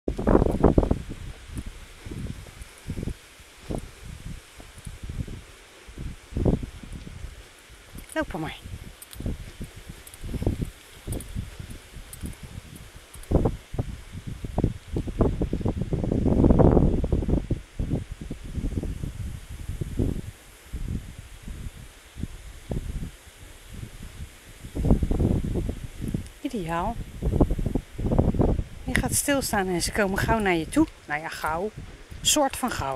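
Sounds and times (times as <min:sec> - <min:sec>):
wind buffeting microphone: 0:00.1 - 0:32.9.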